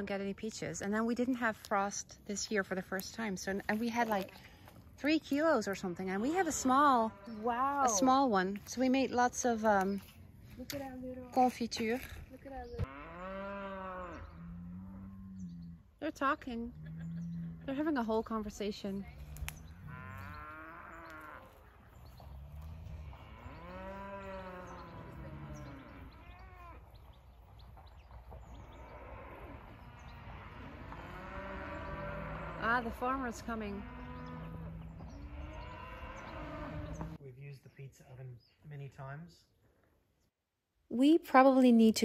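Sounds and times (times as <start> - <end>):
cattle mooing: 5.6 - 8.2, 12.8 - 15.8, 19.2 - 21.7, 22.3 - 26.8, 28.7 - 37.2.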